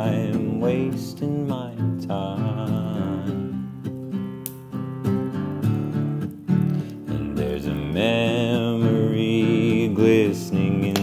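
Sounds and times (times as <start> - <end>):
acoustic guitar: 0.0 - 11.0
man singing long note: 7.1 - 11.0.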